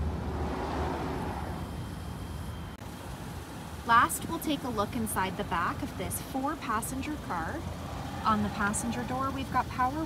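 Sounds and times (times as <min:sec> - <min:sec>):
distant traffic rumble and hiss: 0:00.0 - 0:10.0.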